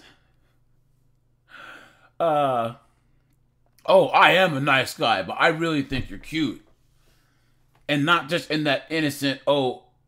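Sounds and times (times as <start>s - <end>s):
man inhaling: 1.5s - 2.2s, 6.8s - 7.8s.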